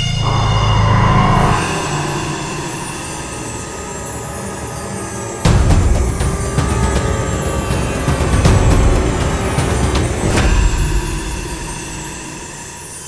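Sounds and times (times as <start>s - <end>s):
dramatic background music: 0.0s - 13.0s.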